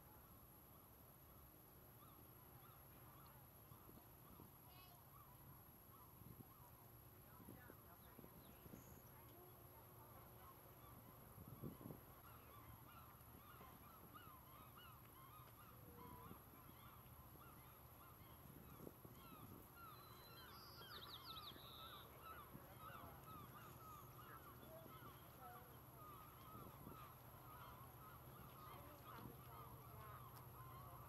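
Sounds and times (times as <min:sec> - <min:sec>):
flock of birds honking: 0:22.0 - 0:31.0.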